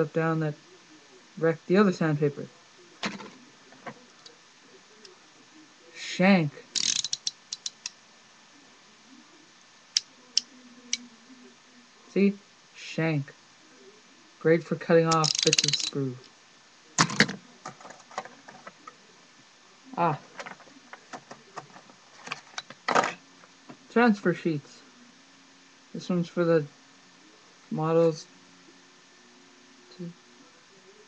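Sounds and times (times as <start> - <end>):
small clicks of objects handled: 6.8 - 8.0, 15.1 - 16.4, 20.4 - 23.1.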